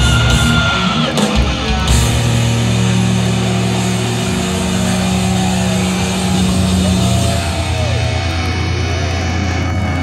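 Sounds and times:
bass guitar: 0.0 - 10.0
distorted electric guitars: 0.0 - 10.0.

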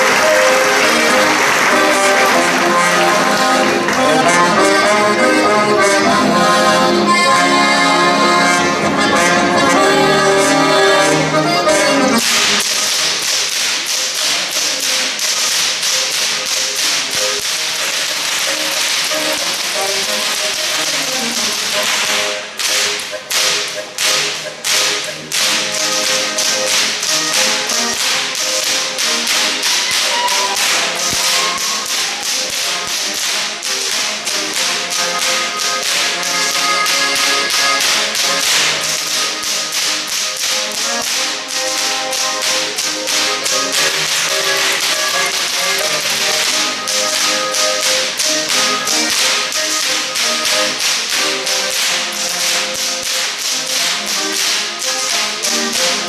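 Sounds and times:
accordion band playing: 0.0 - 56.0
whips cracking: 12.1 - 56.0.

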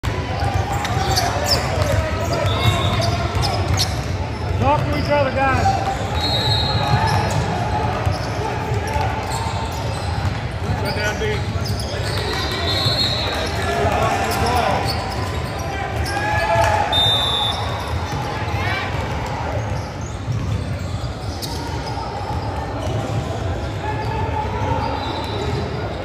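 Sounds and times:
indistinct talk echoing: 0.0 - 26.0.

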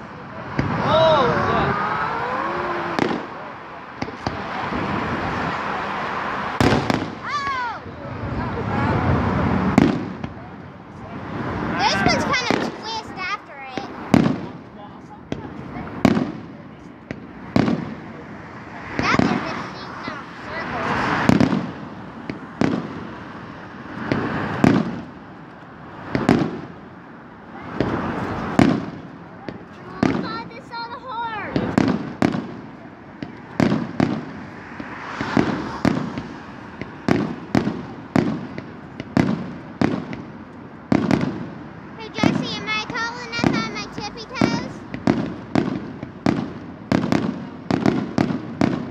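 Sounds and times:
fireworks bursting: 0.0 - 48.9.

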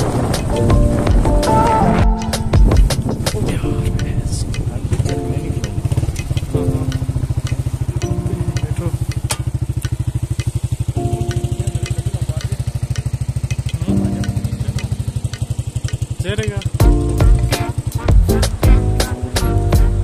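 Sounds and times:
background music: 0.0 - 10.0, 10.8 - 20.0
motorcycle engine running: 0.0 - 20.0.

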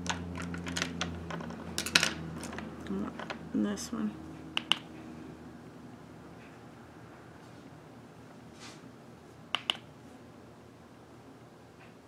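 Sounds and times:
sharp clicks of makeup tools: 4.6 - 4.9, 9.5 - 9.8.

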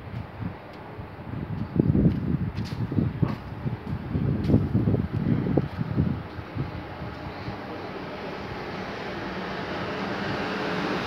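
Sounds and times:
distant train rumble: 0.0 - 11.0
wind buffeting microphone: 0.0 - 11.0.

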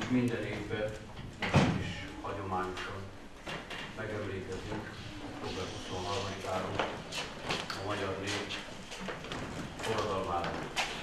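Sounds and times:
man speaking: 0.0 - 3.2, 4.0 - 7.0, 7.7 - 8.8, 9.8 - 10.7.

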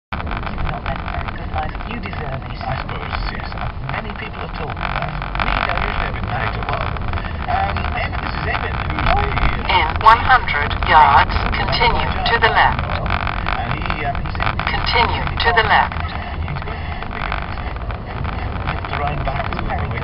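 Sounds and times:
car engine and road rumble: 0.1 - 20.0.

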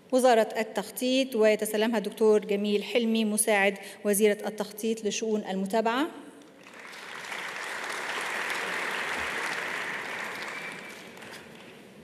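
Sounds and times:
audience applauding: 6.5 - 11.8.

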